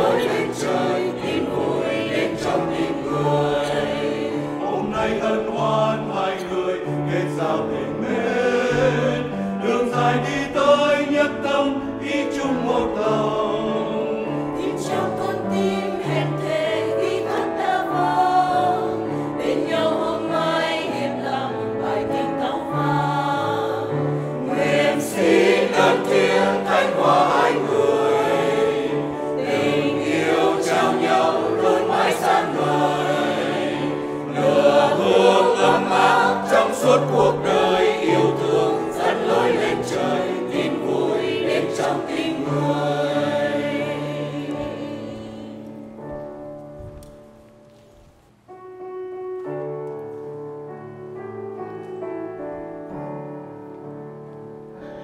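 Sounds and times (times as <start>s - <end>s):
church choir singing: 0.0s - 48.1s, 49.4s - 55.0s.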